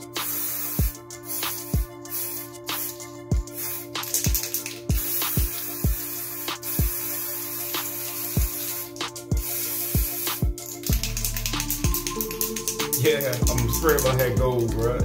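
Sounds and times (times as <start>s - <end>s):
aerosol spray can hissing: 0.0s - 14.3s
music with deep bass kicks: 1.7s - 2.0s, 3.3s - 3.5s, 9.2s - 15.0s.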